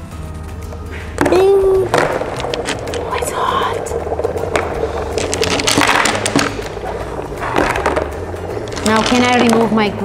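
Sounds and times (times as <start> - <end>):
dry ice bubbling in water: 0.8 - 10.0.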